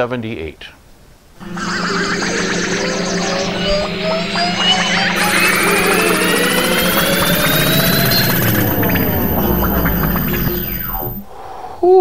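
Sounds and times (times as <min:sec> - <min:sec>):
electronic gliding tones: 0:01.4 - 0:11.3
electronic low hum with warbling tone: 0:01.4 - 0:11.3.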